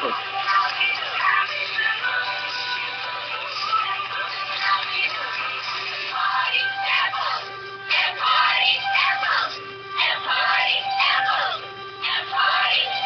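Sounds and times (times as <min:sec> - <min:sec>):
pop song on radio: 0:00.0 - 0:13.0.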